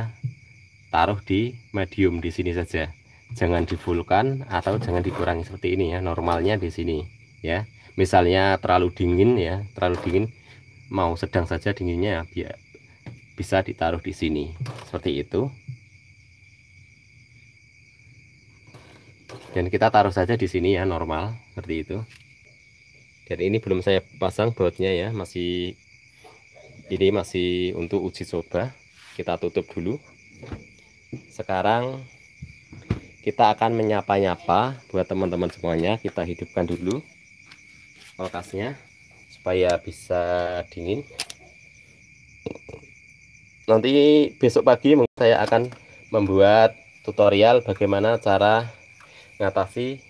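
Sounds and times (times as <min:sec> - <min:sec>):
crickets chirring: 0:00.0 - 0:50.0
soft handling noise: 0:35.4 - 0:39.4
sharp click: 0:41.2 - 0:41.4.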